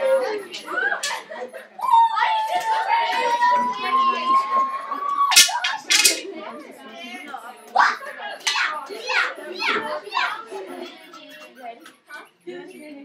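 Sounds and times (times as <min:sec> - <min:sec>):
girls shrieking: 0:01.8 - 0:05.8.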